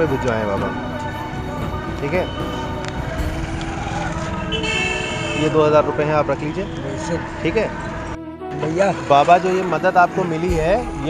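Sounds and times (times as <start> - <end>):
street traffic: 0.0 - 11.0
vehicle horn: 3.7 - 7.1.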